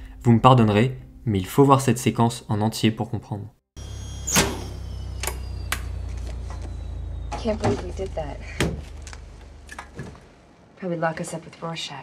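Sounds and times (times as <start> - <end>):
cockpit low hum: 3.8 - 10.4
sharp clunk: 4.3 - 5.9.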